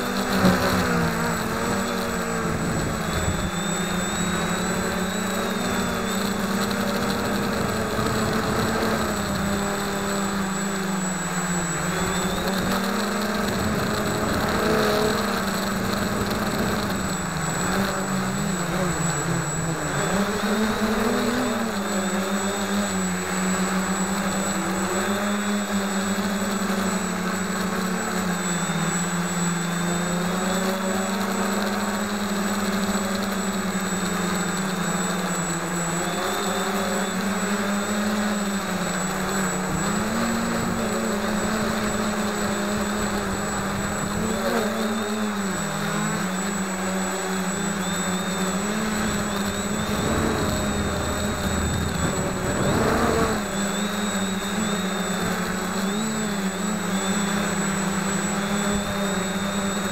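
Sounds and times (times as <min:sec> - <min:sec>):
quadcopter propellers buzzing: 0:00.0 - 0:59.9.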